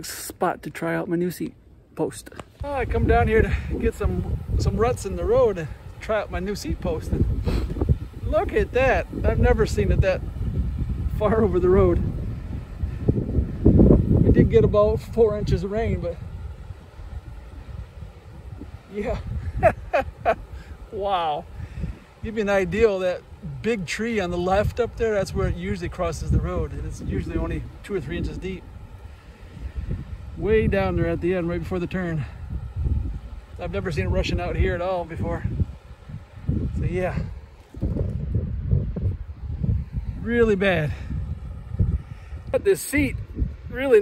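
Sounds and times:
wind buffeting microphone: 1.9 - 44.0.

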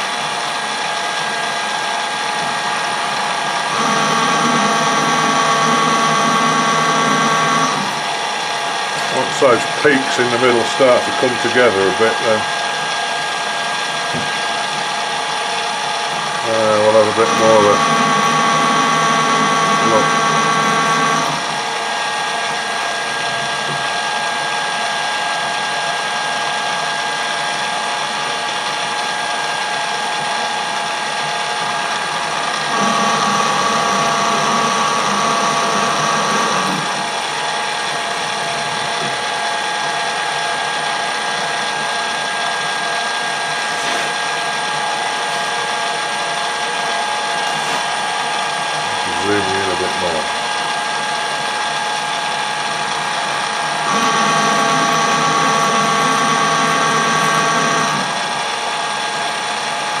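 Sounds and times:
metal lathe gearing whining: 0.0 - 60.0.

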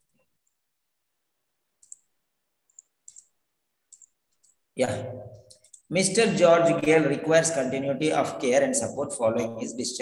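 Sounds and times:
computer mouse clicks: 1.8 - 2.1, 2.7 - 4.6, 5.4 - 5.9.

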